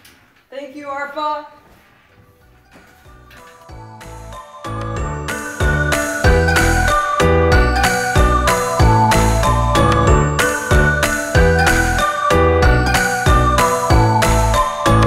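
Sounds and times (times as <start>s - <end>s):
background music with steady beat: 2.2s - 15.0s.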